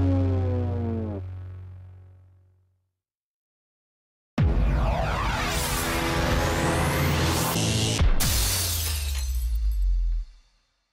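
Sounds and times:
electronic logo ident: 0:04.4 - 0:08.2.

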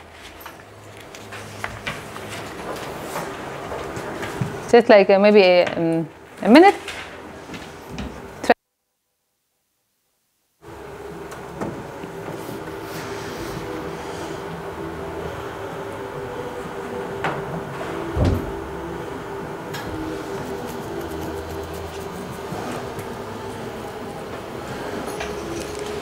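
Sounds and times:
steady hum: 0:10.5 - 0:26.0.

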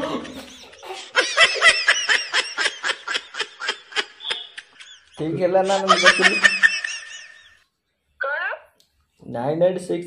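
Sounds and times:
man giggling: 0:00.0 - 0:07.5.

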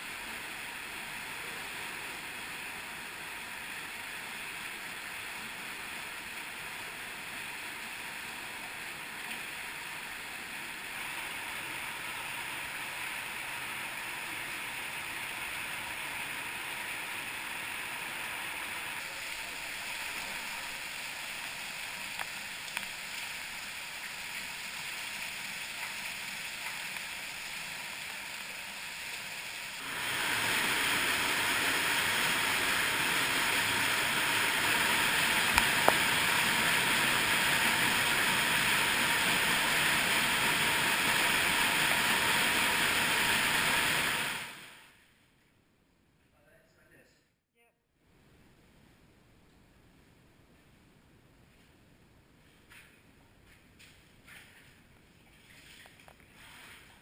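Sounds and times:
cave stream rushing over rock: 0:00.0 - 0:44.8
waterfall rushing: 0:29.7 - 0:44.6.

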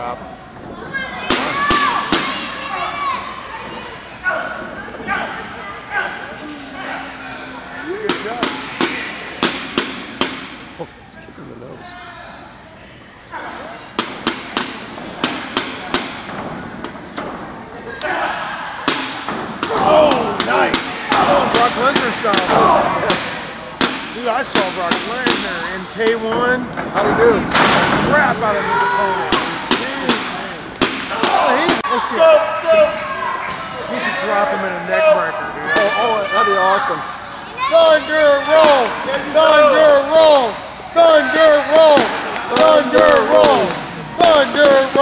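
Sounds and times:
voices shouting: 0:00.8 - 0:09.7, 0:17.7 - 0:26.0, 0:28.1 - 0:45.0.

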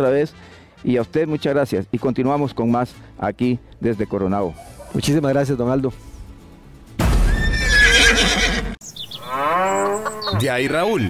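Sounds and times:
horse whinnying: 0:07.2 - 0:10.6.

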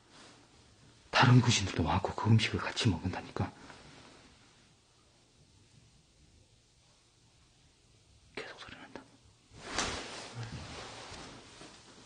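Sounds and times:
person whispering: 0:08.3 - 0:09.2.

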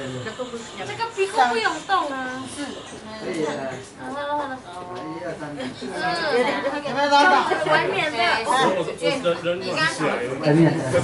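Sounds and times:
several voices talking: 0:00.0 - 0:11.0.

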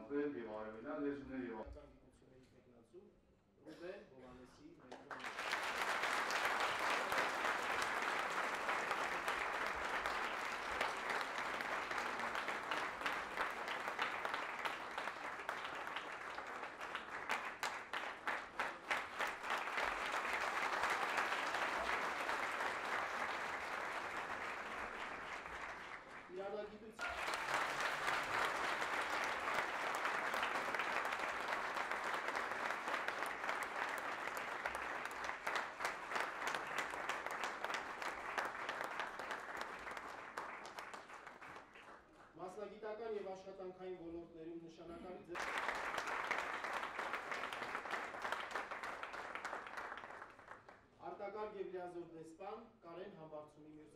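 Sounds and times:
audience applauding: 0:05.0 - 0:42.3, 0:45.4 - 0:50.9.

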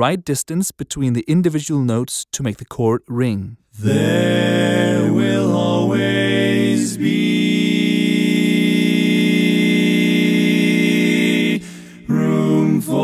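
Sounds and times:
a cappella barbershop harmony: 0:03.8 - 0:13.0.

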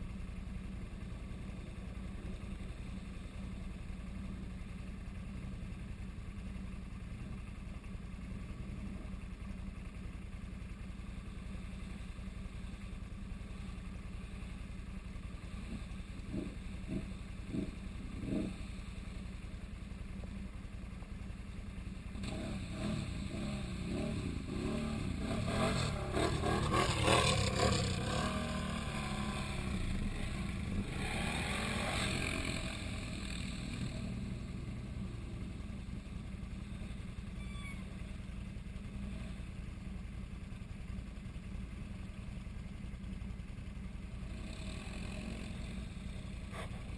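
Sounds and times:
atv engine revving: 0:15.4 - 0:19.4, 0:22.1 - 0:38.2, 0:44.1 - 0:46.9.

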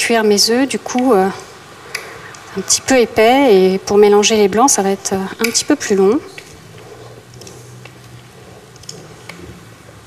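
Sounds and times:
steady low hum: 0:00.0 - 0:10.0
spatula mixing cream: 0:05.5 - 0:10.0.

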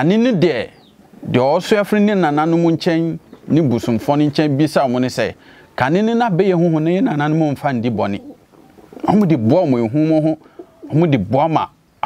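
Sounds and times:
man talking sing-song: 0:00.0 - 0:08.2, 0:09.1 - 0:11.8.

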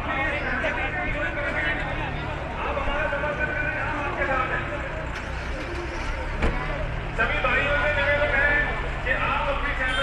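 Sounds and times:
street crowd voices: 0:00.0 - 0:10.0
vehicle engine idling: 0:00.0 - 0:10.0.

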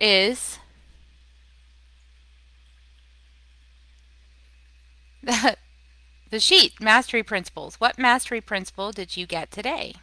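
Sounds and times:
background hiss: 0:00.0 - 0:10.0
steady low hum: 0:00.0 - 0:10.0.

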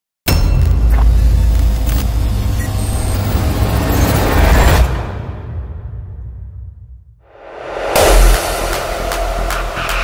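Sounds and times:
whoosh: 0:07.2 - 0:10.0.

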